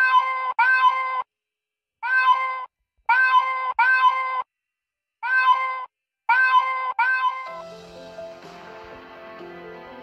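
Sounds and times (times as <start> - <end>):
recorded cat meowing: 0.0 - 1.2, 2.0 - 4.4, 5.2 - 7.5.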